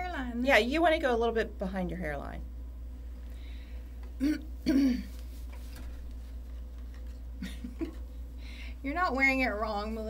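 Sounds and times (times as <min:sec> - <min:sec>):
woman clearing her throat: 0:04.2 - 0:05.2.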